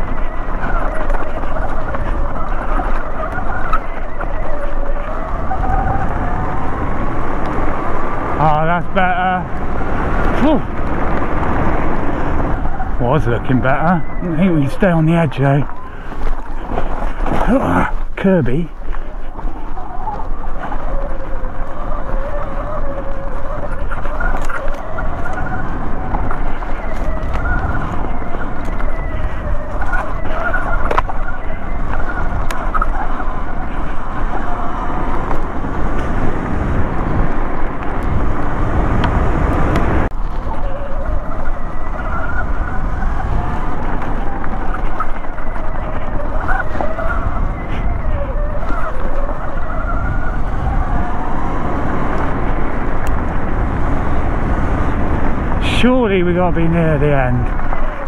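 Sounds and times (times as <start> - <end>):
wind and tyre rumble: 0.0 - 58.0.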